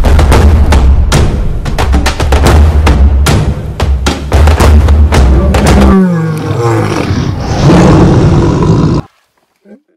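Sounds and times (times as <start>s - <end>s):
lion roaring: 5.2s - 9.1s.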